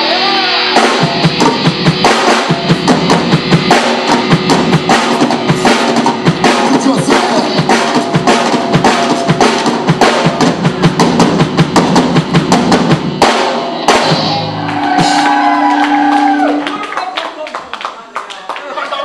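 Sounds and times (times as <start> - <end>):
amplified guitars: 0.0 - 17.0
drum kit: 0.0 - 17.0.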